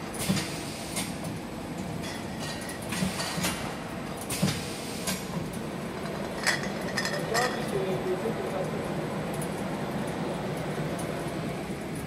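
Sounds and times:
shrink-wrapping machine hum: 0.0 - 12.0
machine clicks and clacks: 0.1 - 1.4, 2.1 - 7.9.

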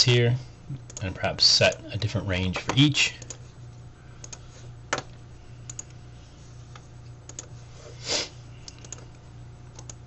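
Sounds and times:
faint low hum: 0.0 - 10.0
computer mouse clicks: 4.2 - 4.4, 5.7 - 6.0, 6.7 - 7.5, 8.6 - 10.0.

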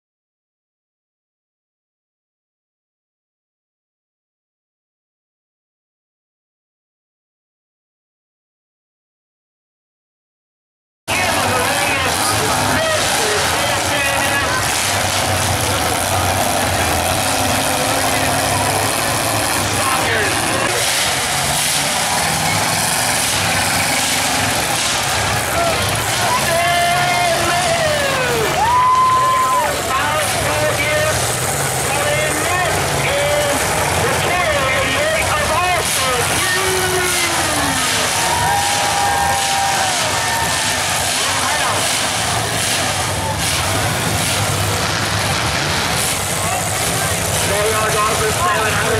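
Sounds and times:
crowd shouting: 11.1 - 44.8
car engines running: 11.1 - 48.9.

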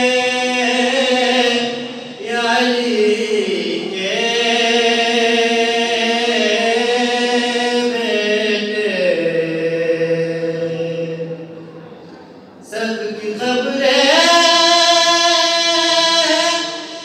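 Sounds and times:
man chanting devotional poem: 0.0 - 11.8, 12.6 - 17.0.

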